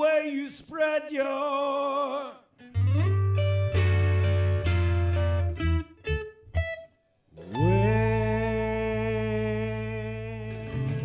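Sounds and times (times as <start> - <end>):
blues-rock band playing: 2.8 - 6.8.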